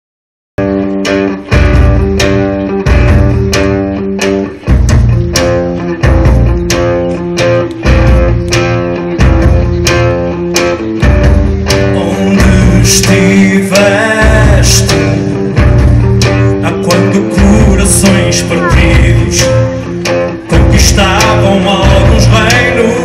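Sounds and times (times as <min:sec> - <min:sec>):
bass guitar: 0:00.6 - 0:23.0
guitar chords strummed: 0:00.6 - 0:23.0.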